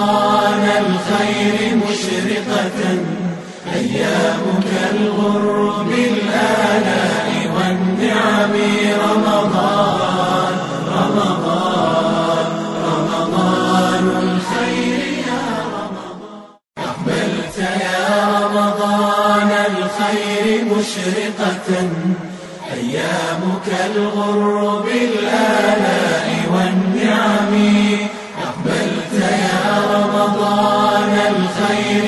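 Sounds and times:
voices chanting a melody: 0:00.0 - 0:32.0.

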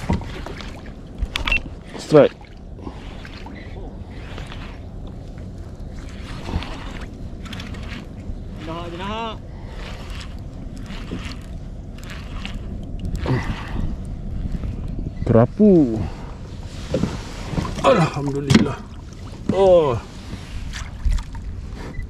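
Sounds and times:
water around kayak: 0:00.0 - 0:22.0
wind noise on microphone: 0:09.8 - 0:22.0.

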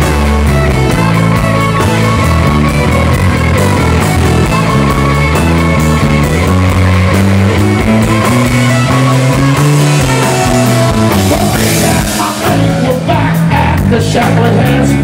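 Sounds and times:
bass: 0:00.0 - 0:15.0
drums: 0:00.0 - 0:15.0
electric guitars: 0:00.0 - 0:15.0
keyboards: 0:00.0 - 0:15.0.

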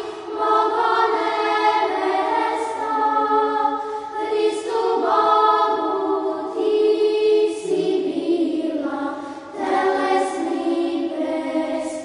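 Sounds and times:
choir chanting unaccompanied: 0:00.0 - 0:12.0.

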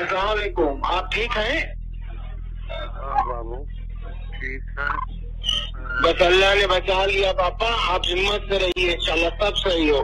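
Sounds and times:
low electrical hum: 0:00.0 - 0:10.0
muffled voice on telephone: 0:02.7 - 0:10.0.

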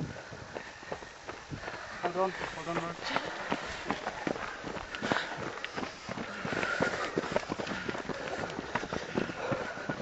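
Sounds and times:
runners' footsteps on stony track: 0:00.0 - 0:10.0.

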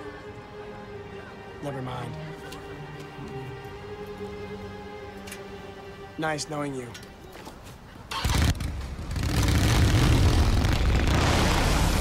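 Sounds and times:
motorcycle engine pulling away: 0:08.1 - 0:12.0.

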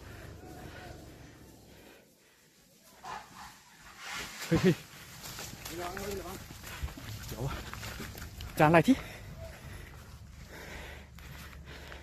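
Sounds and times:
rustle through undergrowth: 0:00.0 - 0:12.0
dog barking: 0:03.0 - 0:03.6.

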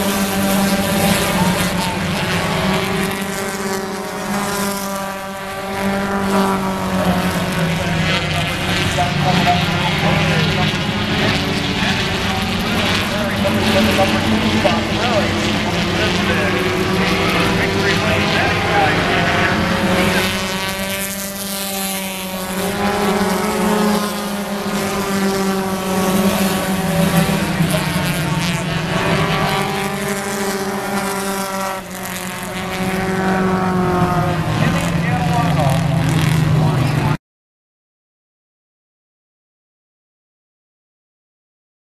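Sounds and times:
race car engines passing: 0:00.0 - 0:37.2.

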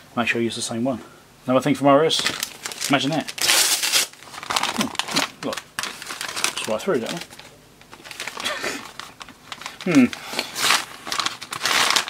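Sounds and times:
packaging bag crinkling: 0:02.1 - 0:12.0.

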